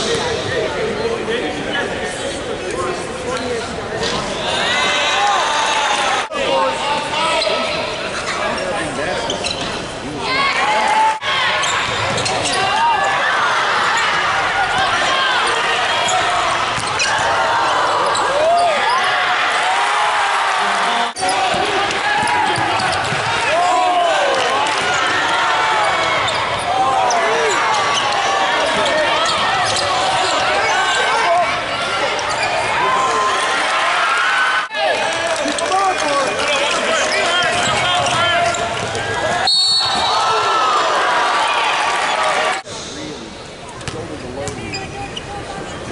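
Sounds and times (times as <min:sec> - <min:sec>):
sneakers squeaking: 0:07.0 - 0:10.4, 0:11.4 - 0:19.2, 0:21.1 - 0:23.8, 0:25.8 - 0:33.6, 0:36.6 - 0:40.5, 0:43.7 - 0:45.9.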